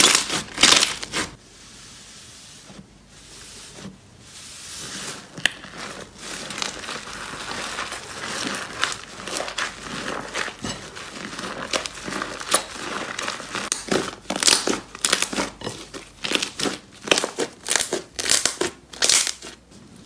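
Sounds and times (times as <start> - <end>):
hands squeezing slime: 4.4 - 19.6.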